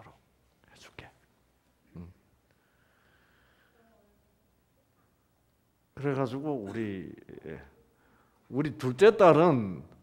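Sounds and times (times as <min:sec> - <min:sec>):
soft breath into microphone: 0:02.5 - 0:04.1, 0:07.8 - 0:08.5.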